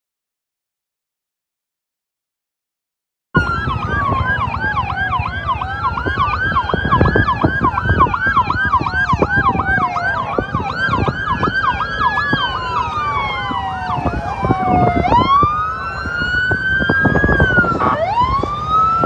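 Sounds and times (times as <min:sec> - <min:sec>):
siren fast yelp: 0:03.4 - 0:19.0
siren slow wail: 0:03.4 - 0:19.0.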